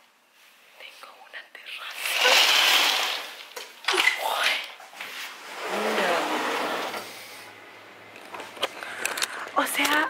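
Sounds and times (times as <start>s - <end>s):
woman whispering: 0.7s - 2.3s, 4.2s - 4.8s.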